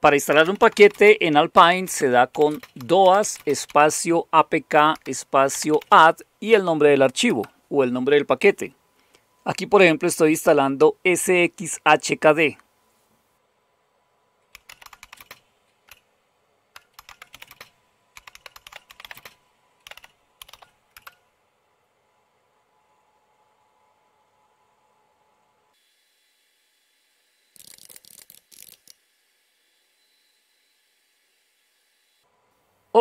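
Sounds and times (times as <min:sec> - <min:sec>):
faint typing on keyboard: 0:00.3 - 0:01.3, 0:02.1 - 0:04.0, 0:04.8 - 0:06.1, 0:14.5 - 0:16.0, 0:16.7 - 0:21.2.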